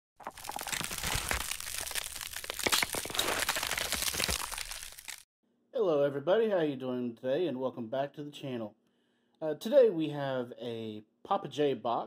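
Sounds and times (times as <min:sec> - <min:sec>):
dense crackling and crunching: 0:00.1 - 0:05.3.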